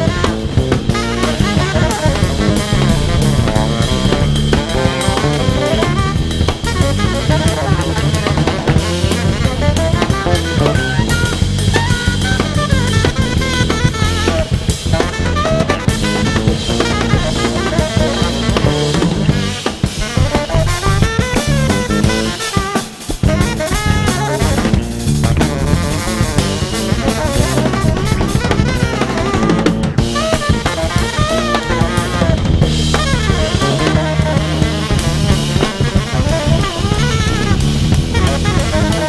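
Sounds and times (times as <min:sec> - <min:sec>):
drum kit: 0:00.0 - 0:39.0
electric bass: 0:00.0 - 0:39.0
saxophones: 0:00.0 - 0:39.0.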